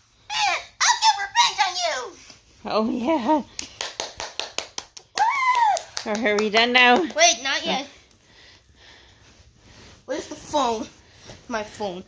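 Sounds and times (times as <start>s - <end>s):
sharp hand claps: 3.5s - 7.4s.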